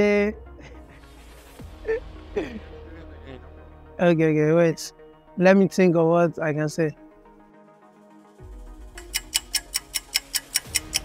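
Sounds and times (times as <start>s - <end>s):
low background music: 0.0s - 11.0s
fast clock ticking: 9.0s - 11.0s.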